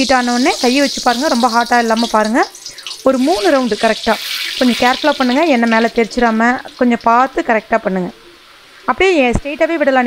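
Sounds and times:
dough sizzling in hot oil: 0.0s - 8.0s
person talking: 0.0s - 8.2s.

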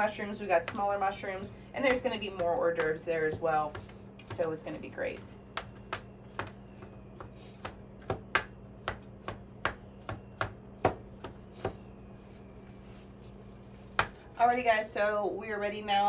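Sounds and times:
knife chopping on cutting board: 5.2s - 11.8s.

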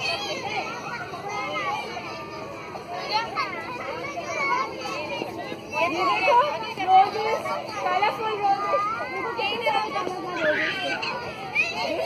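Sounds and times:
young children chattering: 0.0s - 12.0s.

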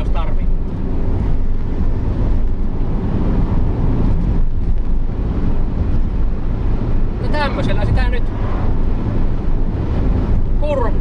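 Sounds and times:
engine and tyre drone: 0.0s - 11.0s
wind rushing past: 0.4s - 11.0s.

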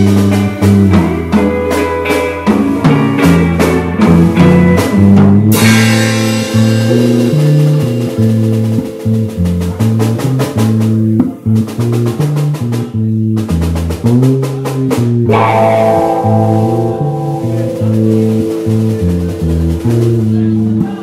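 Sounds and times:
bass line: 0.0s - 21.0s
drum kit beat: 0.0s - 21.0s
guitar: 0.0s - 21.0s
cymbal crash: 15.3s - 19.8s.

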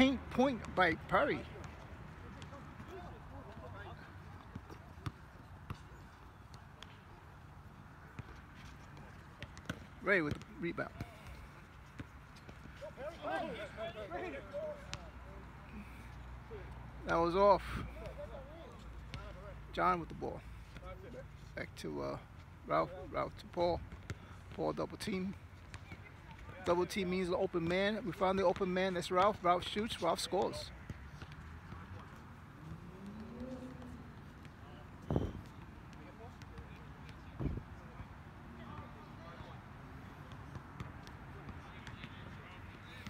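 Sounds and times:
quiet outdoor background noise: 0.0s - 43.0s
players calling to each other: 12.7s - 19.6s.

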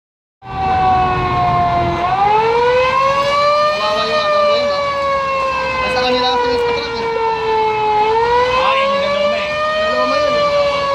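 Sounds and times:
fire truck siren wailing: 0.4s - 10.9s.

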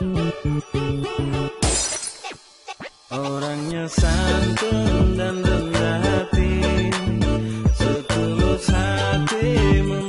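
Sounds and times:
background music: 0.0s - 10.0s
glass shattering crash: 1.6s - 2.6s.

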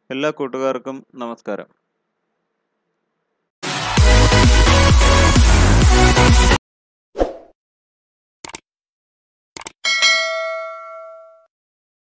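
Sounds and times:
bell-like notification ding: 9.9s - 11.5s.

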